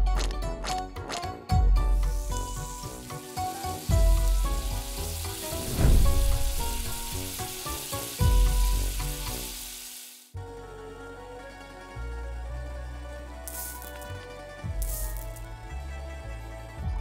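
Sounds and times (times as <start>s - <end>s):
background music: 0.0s - 17.0s
bacon sizzling in hot oil: 1.9s - 10.4s, 13.5s - 14.1s
deep bass hits: 5.6s - 7.3s.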